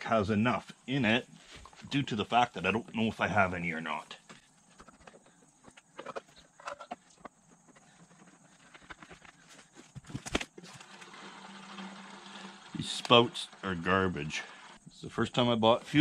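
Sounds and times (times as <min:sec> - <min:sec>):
faint steady fuel pouring: 0:10.7 - 0:14.8.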